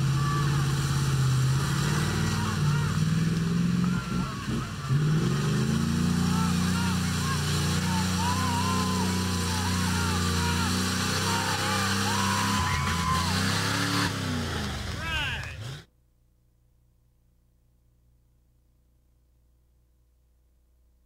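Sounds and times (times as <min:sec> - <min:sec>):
people shouting and whooping: 0:00.0 - 0:00.9, 0:01.6 - 0:05.2, 0:06.0 - 0:14.1, 0:14.9 - 0:15.6
truck engine at high revs: 0:00.0 - 0:15.9.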